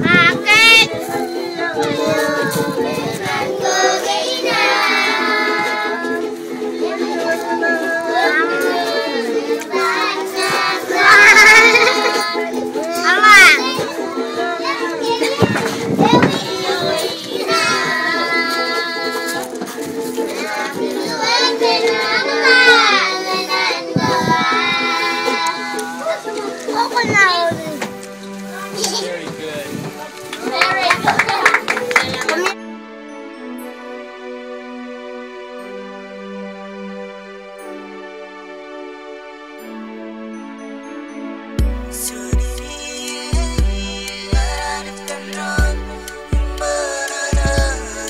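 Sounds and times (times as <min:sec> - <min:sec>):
children singing: 0:00.0 - 0:29.6, 0:41.9 - 0:48.0
strummed ukulele: 0:00.9 - 0:29.0.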